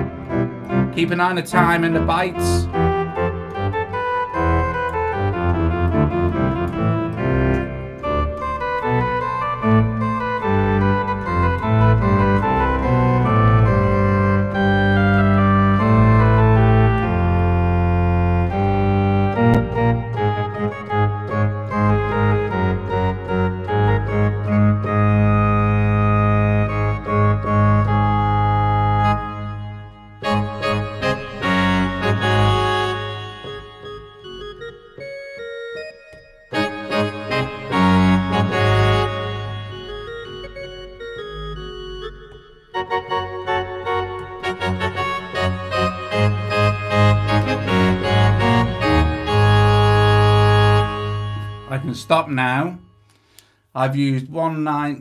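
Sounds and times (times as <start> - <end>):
pipe organ hymn chords: 0.0 - 53.4.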